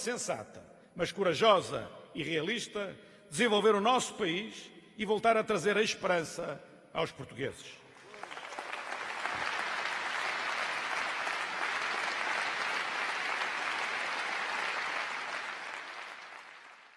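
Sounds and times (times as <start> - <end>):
audience applauding: 7.9 - 16.9.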